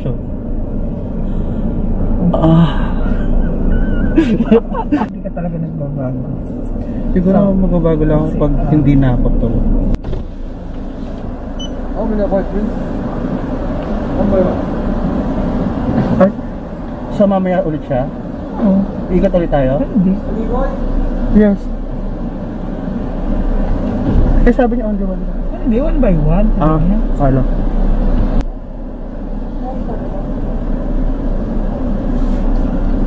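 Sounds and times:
car cabin rumble: 0:00.0 - 0:17.0, 0:17.6 - 0:33.0.

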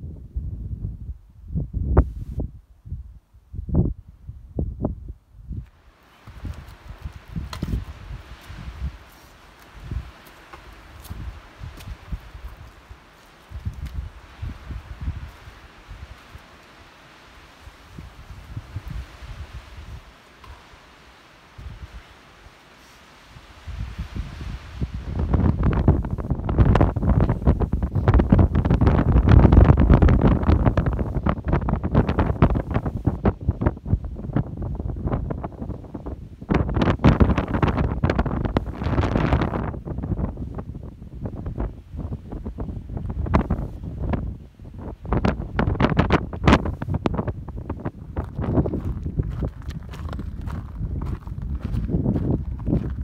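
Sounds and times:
wind buffeting microphone: 0:00.0 - 0:16.5, 0:17.4 - 0:20.8, 0:21.5 - 0:22.1, 0:23.3 - 0:53.0.

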